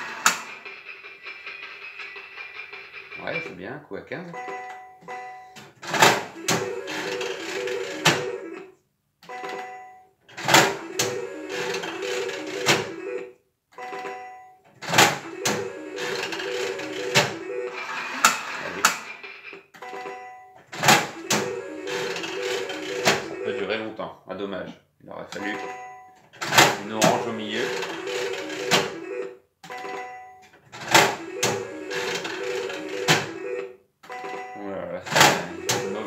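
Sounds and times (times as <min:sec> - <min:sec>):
slot machine spin clack: 0:00.0 - 0:03.6, 0:15.0 - 0:20.3, 0:21.0 - 0:23.7, 0:26.6 - 0:30.2, 0:30.8 - 0:36.0
beeping electronic tune: 0:10.7 - 0:14.3, 0:15.2 - 0:19.2, 0:21.1 - 0:24.0, 0:25.4 - 0:26.0, 0:27.1 - 0:30.3, 0:31.1 - 0:34.7, 0:35.4 - 0:36.0.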